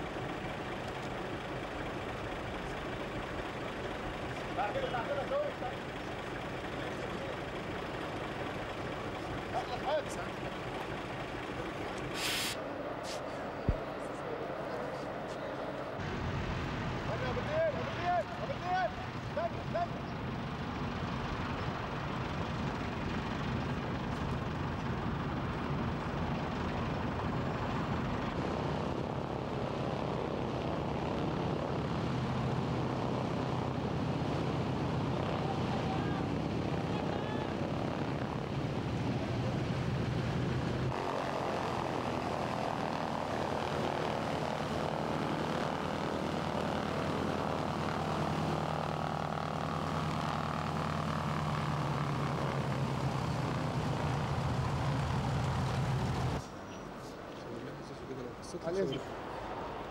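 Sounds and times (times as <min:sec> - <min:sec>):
propeller engines droning: 0:00.0 - 0:59.9.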